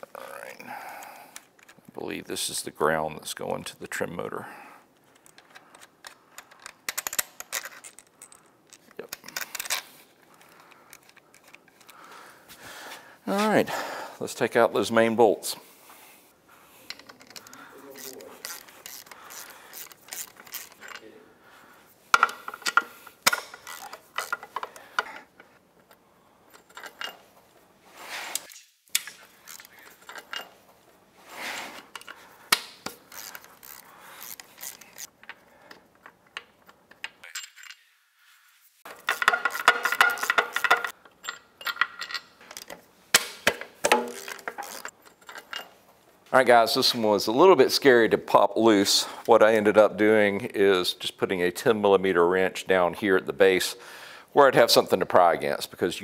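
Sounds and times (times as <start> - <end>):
metallic clinks of socket and bolts: 31.9 - 37.9, 38.9 - 42.8.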